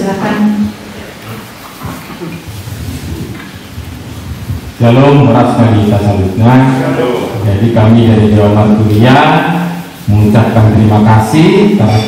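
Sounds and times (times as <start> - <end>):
microphone handling noise: 1.2 - 5.2
man speaking into microphone: 4.6 - 12.0.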